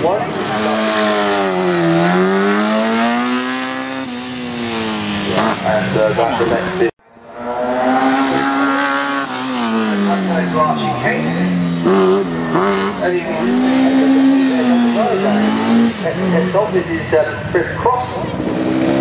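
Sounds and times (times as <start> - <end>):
racing car engine revving: 0.0 - 19.0.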